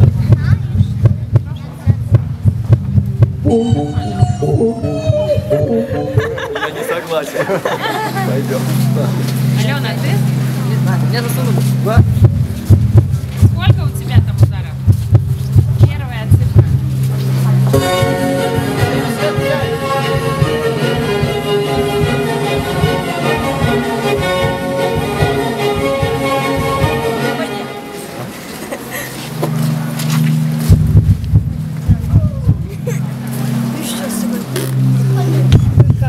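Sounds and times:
dull low knocks: 0.0s - 6.6s, 11.9s - 17.0s, 30.7s - 32.8s
amplified heartbeat thumps: 0.0s - 6.7s, 11.9s - 17.1s, 17.8s - 27.1s, 30.6s - 33.0s, 35.5s - 36.0s
high wavering glides: 3.4s - 7.2s
indistinct voices: 3.4s - 7.3s, 17.4s - 30.0s
music with sustained notes: 3.4s - 14.8s, 16.8s - 35.8s
steady low hum: 10.2s - 29.0s.

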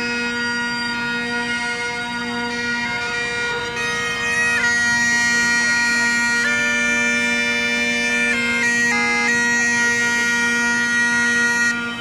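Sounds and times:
bagpipe chanter note: 0.0s - 12.0s
bagpipe drones: 0.0s - 12.0s.

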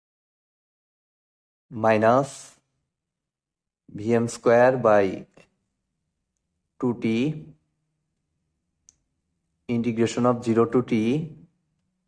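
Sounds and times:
man speaking: 1.7s - 2.6s, 3.9s - 5.5s, 6.8s - 7.6s, 9.7s - 11.5s.

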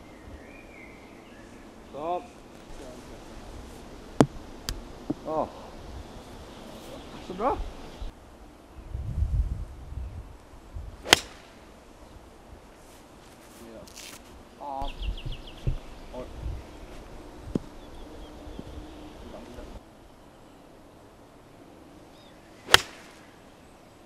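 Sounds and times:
golf club striking ball: 11.0s - 11.6s, 22.7s - 23.2s.

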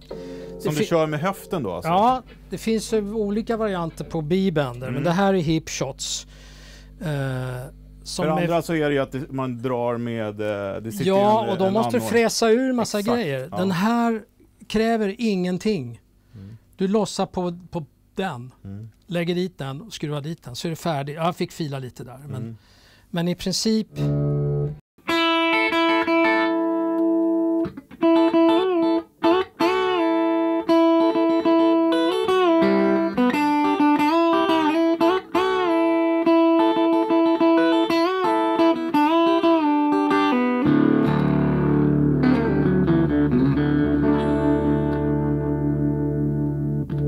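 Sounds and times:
electric guitar with bent notes: 0.0s - 5.1s, 23.9s - 47.0s.

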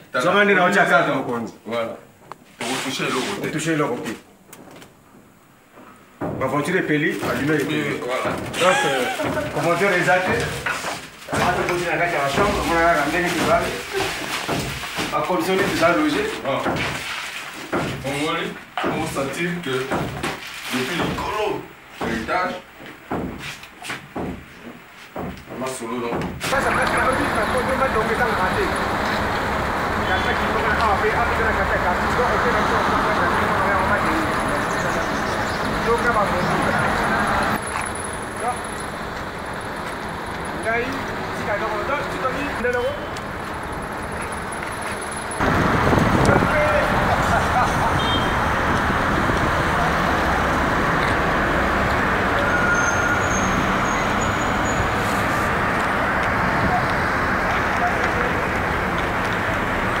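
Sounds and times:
people talking: 0.1s - 4.2s, 6.4s - 10.7s, 11.3s - 14.2s, 15.1s - 16.8s, 18.0s - 20.0s, 20.7s - 22.7s, 25.6s - 37.6s, 38.3s - 38.7s, 40.4s - 43.1s, 46.0s - 50.7s, 56.5s - 58.9s
road traffic: 26.4s - 60.0s
low engine rumble: 26.6s - 52.5s
rush of passing cars: 26.6s - 60.0s.

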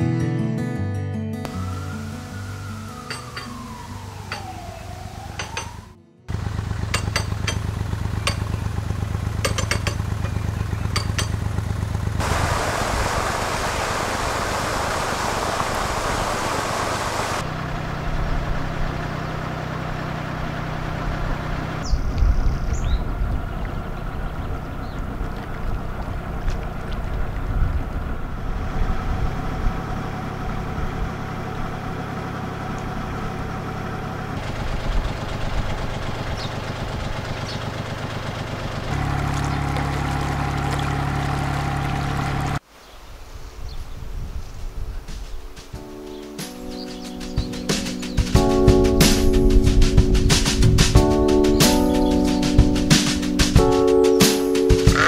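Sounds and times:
boat engine humming: 1.5s - 42.6s, 47.0s - 55.0s
rushing noise: 12.2s - 17.6s.

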